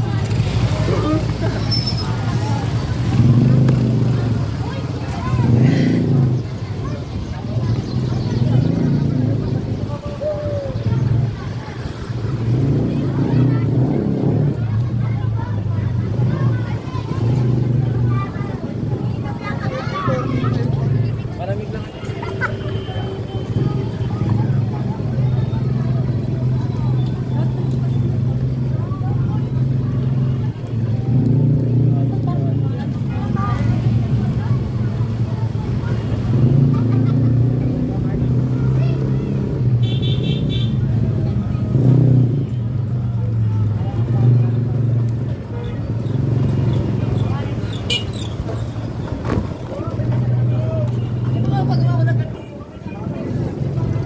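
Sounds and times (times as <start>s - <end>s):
motorcycle and scooter engines: 0.0s - 54.0s
people's voices: 0.0s - 54.0s.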